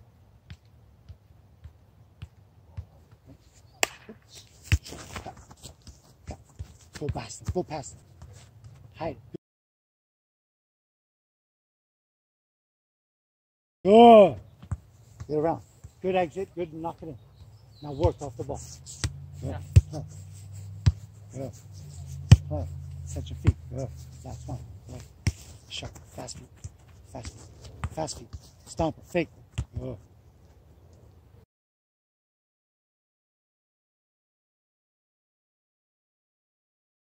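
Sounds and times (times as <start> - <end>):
soccer ball touching foot: 3.8 - 8.8, 17.7 - 30.0
footsteps running on grass: 4.4 - 8.6.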